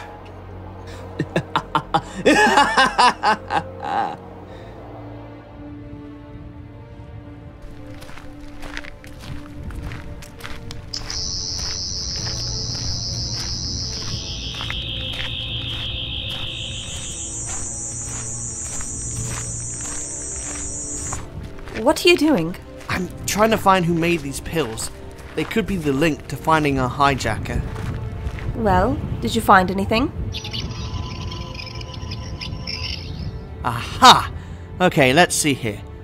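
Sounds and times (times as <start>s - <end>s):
low music drone: 0.0s - 36.0s
low hum: 10.9s - 21.7s
faint steady tone: 11.0s - 21.2s
high warbling electronic whine: 11.0s - 21.3s.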